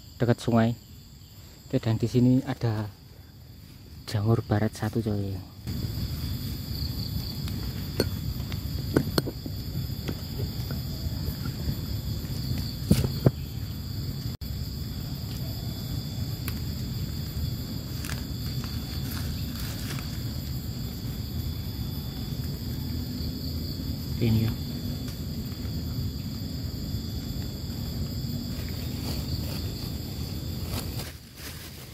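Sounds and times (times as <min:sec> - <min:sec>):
insects trilling: 0:00.0 - 0:31.9
hands rustling wet leaves: 0:16.4 - 0:20.6, 0:27.3 - 0:31.9.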